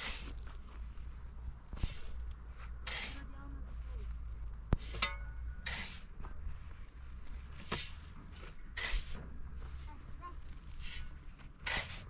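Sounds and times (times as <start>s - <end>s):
shovel scraping into sand: 0.0s - 0.5s, 1.7s - 3.3s, 4.8s - 6.2s, 6.8s - 12.0s.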